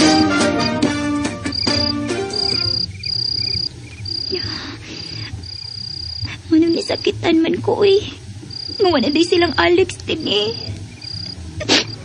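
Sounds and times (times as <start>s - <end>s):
background music: 0.0s - 3.7s
crickets trilling: 0.0s - 12.0s
soft cricket chirps: 0.1s - 12.0s.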